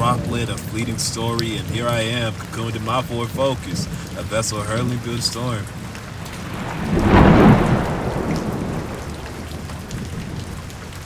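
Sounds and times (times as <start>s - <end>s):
steady rain falling: 0.0s - 11.0s
thunder rumbling: 0.0s - 11.0s.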